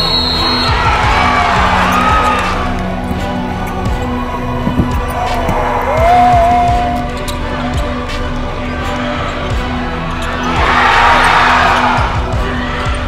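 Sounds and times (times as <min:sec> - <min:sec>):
background music: 0:00.0 - 0:13.0
gym crowd noise: 0:00.0 - 0:13.0
basketball dribbling on hardwood: 0:04.6 - 0:05.6.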